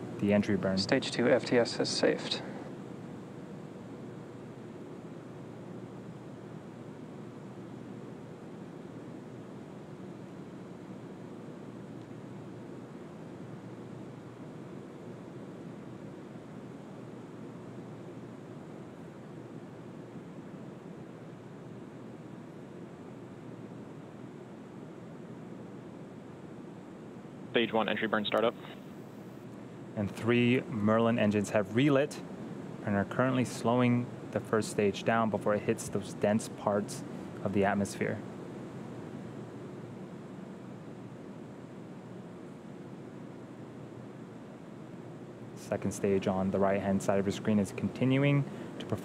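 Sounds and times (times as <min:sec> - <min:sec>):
steady rushing hiss: 0:00.0 - 0:49.0.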